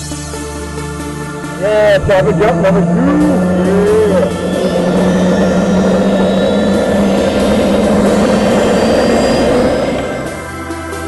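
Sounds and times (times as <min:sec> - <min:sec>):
helicopter rotor and turbine noise: 0:01.4 - 0:11.0.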